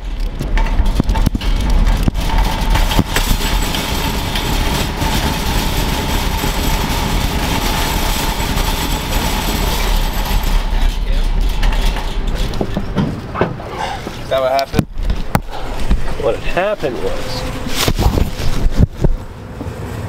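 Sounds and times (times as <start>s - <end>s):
shopping cart rattling on asphalt: 0.0s - 19.0s.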